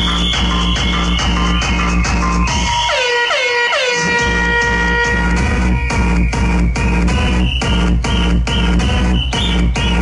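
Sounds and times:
electronic club music: 0.0s - 10.0s
horn-like sample blasting: 0.0s - 10.0s.

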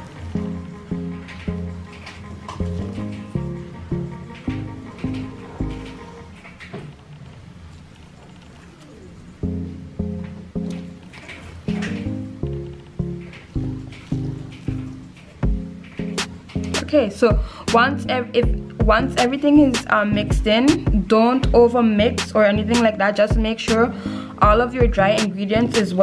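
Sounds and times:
plucked string music: 0.0s - 6.4s, 8.9s - 17.1s.

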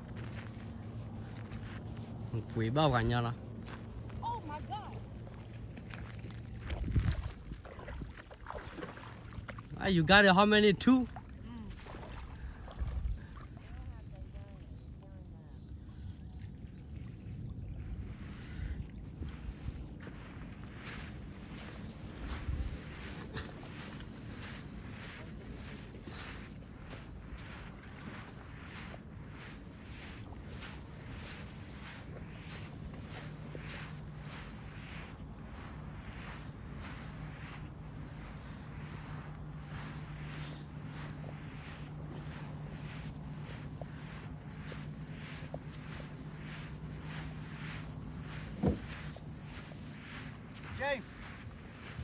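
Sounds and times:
footsteps crunching on sand: 0.0s - 14.8s, 17.7s - 52.0s
high-pitched insect buzz: 19.2s - 52.0s.

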